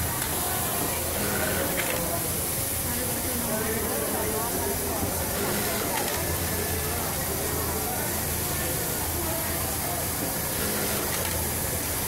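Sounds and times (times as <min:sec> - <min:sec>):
sewing machinery hum and hiss: 0:00.0 - 0:12.0.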